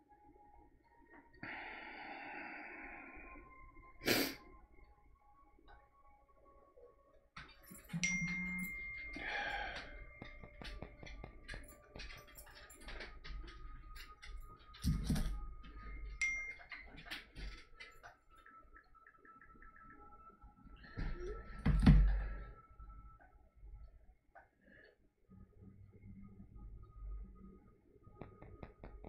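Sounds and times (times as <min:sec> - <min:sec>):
faint steady high tone: 0:06.2 - 0:13.0, 0:14.3 - 0:18.0
small clicks and taps: 0:09.8 - 0:15.8.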